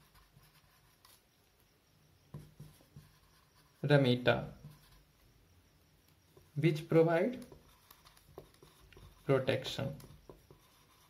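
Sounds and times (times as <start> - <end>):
marker scratching on whiteboard: 0.0 - 1.3, 2.3 - 5.1, 6.3 - 11.0.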